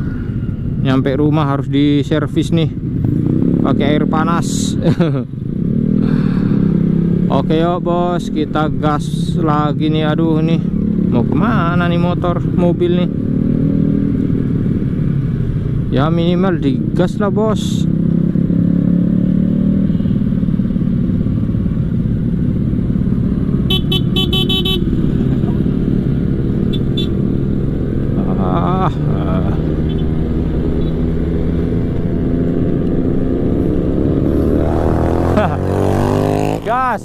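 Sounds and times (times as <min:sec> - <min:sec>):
motorcycle engine accelerating: 0:13.1 - 0:15.9, 0:17.8 - 0:37.0
rapid horn toots: 0:23.7 - 0:25.0, 0:26.7 - 0:27.2.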